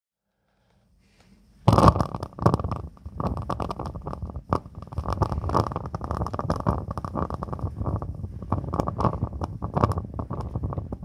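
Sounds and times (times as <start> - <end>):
candle flame fluttering: 1.6 - 11.0
flame crackles: 1.6 - 11.0.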